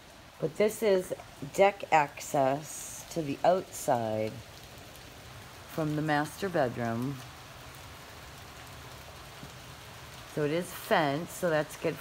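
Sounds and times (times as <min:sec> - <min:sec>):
steady rain: 0:00.0 - 0:12.0.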